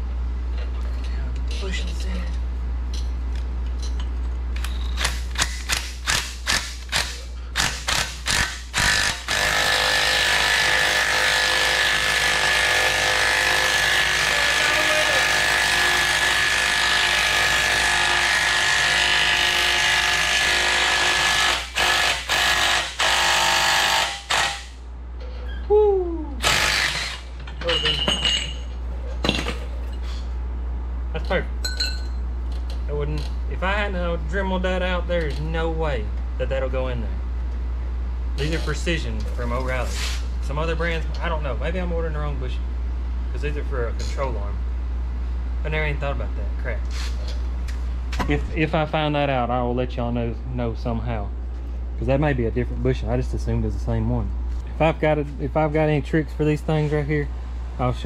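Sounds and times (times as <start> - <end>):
cordless impact wrench hammering: 4.9 - 24.8, 26.4 - 27.3.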